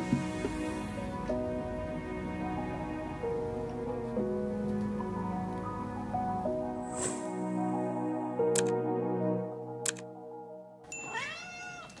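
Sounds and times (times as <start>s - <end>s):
background music: 0.0s - 11.0s
cat meowing: 11.1s - 12.0s.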